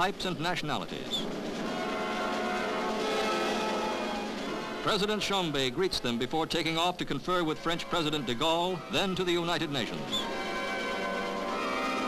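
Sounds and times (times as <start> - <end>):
sustained chord background music: 1.3 - 12.0.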